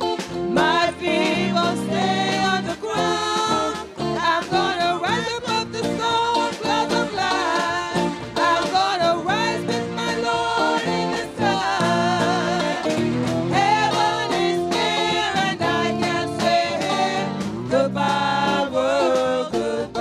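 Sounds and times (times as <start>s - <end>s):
congregation singing a gospel song: 0.0s - 20.0s
live band playing: 0.0s - 20.0s.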